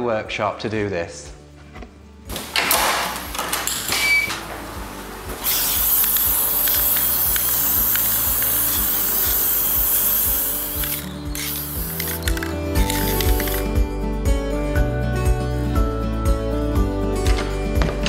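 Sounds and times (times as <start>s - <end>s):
background music: 0.0s - 18.0s
spray can clicks and rattles: 5.4s - 13.7s
spray paint can hissing: 5.4s - 13.7s.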